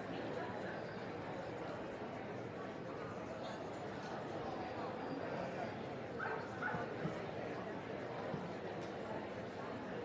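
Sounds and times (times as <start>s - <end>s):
crowd murmur: 0.0s - 0.8s.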